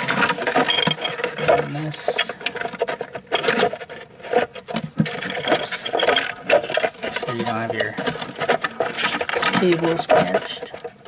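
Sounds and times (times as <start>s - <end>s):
hands rubbing and scraping plastic: 0.0s - 11.0s.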